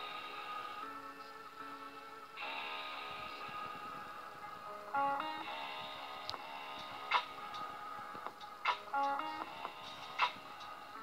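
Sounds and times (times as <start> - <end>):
held music notes: 0.0 - 11.0.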